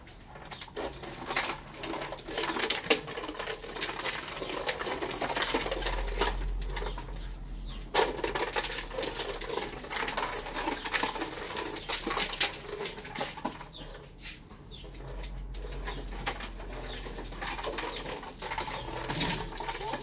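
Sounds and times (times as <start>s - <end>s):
plastic tricycle rattling on paving: 0.0s - 20.0s
birds chirping: 3.7s - 20.0s.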